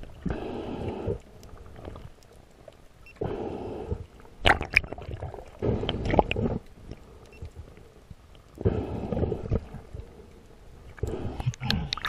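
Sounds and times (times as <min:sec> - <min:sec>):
muffled underwater water rushing: 0:00.0 - 0:12.0.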